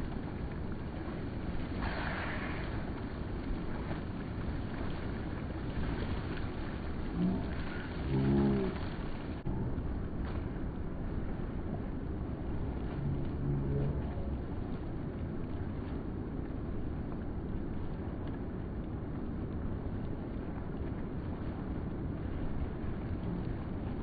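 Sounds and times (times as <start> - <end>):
water splashing from swimmers: 0.0 - 24.0
wind: 0.0 - 24.0.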